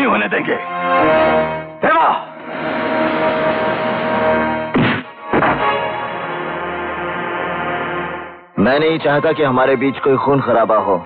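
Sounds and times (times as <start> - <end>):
dramatic film score held notes: 0.0 - 11.0
sharp percussive hits: 3.3 - 7.2.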